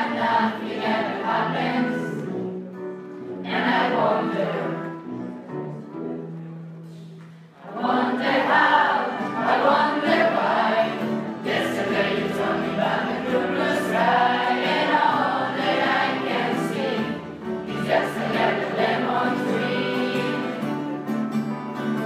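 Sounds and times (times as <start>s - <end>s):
choir singing: 0.0s - 2.6s, 3.3s - 5.2s, 7.6s - 20.9s.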